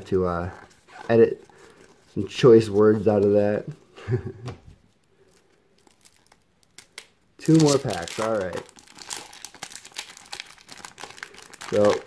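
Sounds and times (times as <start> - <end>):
trading cards rustling and clicking: 5.3 - 12.0.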